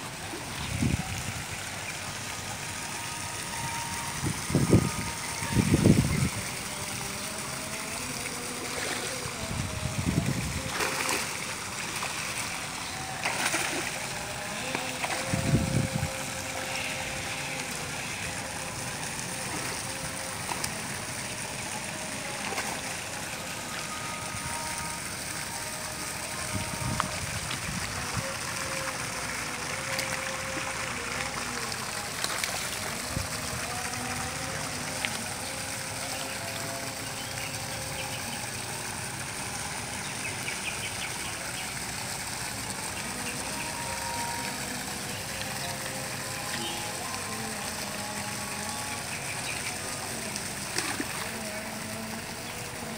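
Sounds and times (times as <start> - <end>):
fish thrashing splashes: 10.3 - 15.5, 27.4 - 33.0, 49.8 - 52.8.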